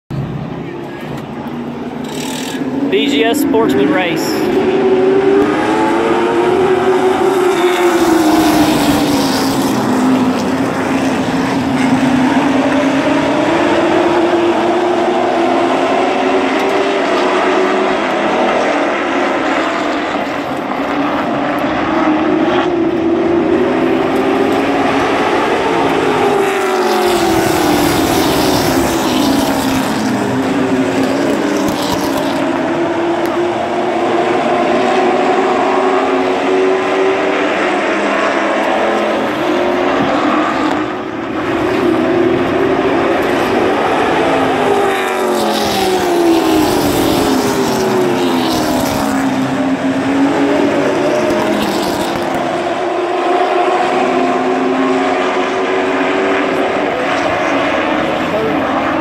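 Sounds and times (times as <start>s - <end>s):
stock car engines droning: 0.1s - 59.0s.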